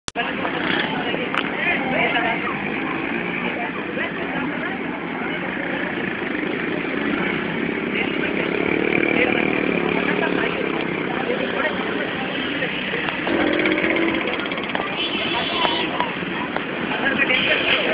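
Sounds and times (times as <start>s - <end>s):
motorcycle and vehicle engines: 0.1s - 17.9s
people's voices: 0.1s - 17.9s.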